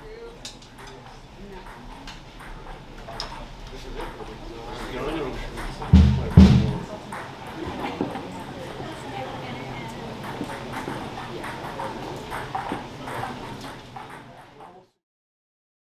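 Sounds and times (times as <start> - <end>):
audience chatter: 0.0 - 15.0.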